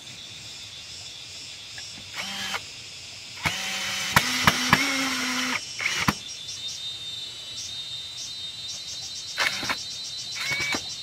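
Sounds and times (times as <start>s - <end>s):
insects trilling: 0.0s - 11.0s
short high insect chirps: 0.0s - 11.0s.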